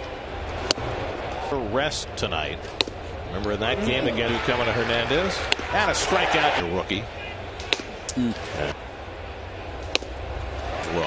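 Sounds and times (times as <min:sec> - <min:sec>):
ballpark crowd noise: 0:00.0 - 0:11.0.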